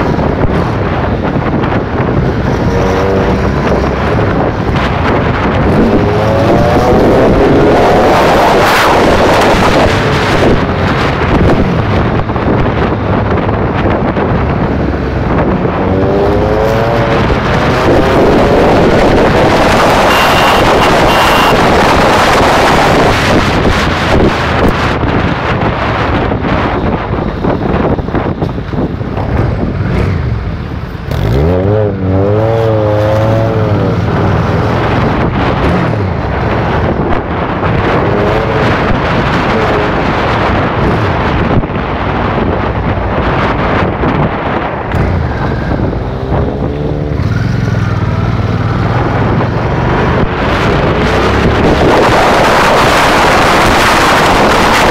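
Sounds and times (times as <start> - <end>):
vehicle engine at road speed: 0.0 - 54.9
wind buffeting microphone: 0.0 - 54.9.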